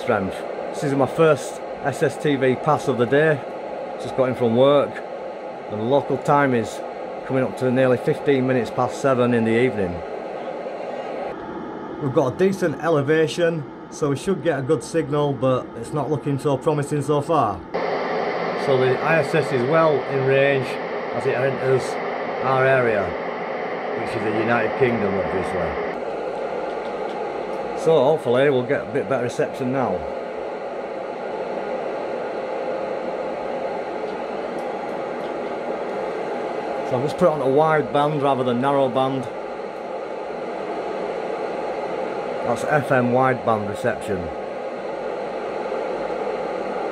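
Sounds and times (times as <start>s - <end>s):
radio receiver hiss: 0.0s - 46.9s.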